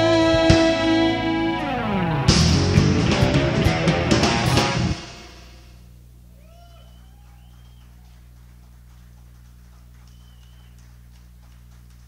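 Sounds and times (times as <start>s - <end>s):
amplifier electrical hum: 1.3s - 12.0s
faint rising and falling cries: 6.3s - 8.4s.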